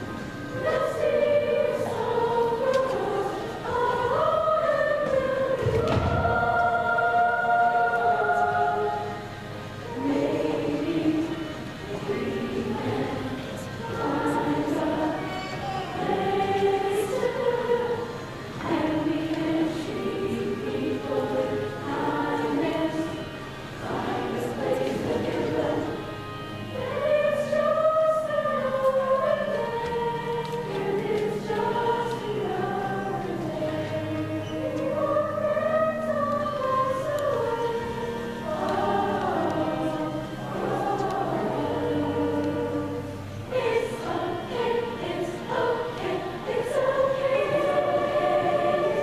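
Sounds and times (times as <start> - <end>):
choir singing: 0.0 - 49.0.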